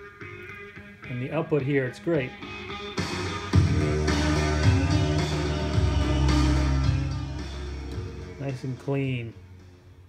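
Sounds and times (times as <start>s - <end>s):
rock music from cassette: 0.0s - 10.0s.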